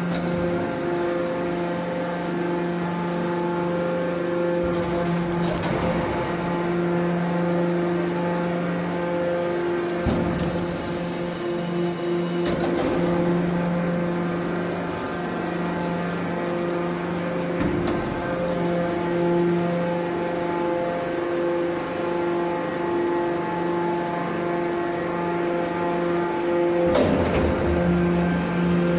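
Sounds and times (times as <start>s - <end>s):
hydraulic pump and motor hum: 0.0s - 28.9s.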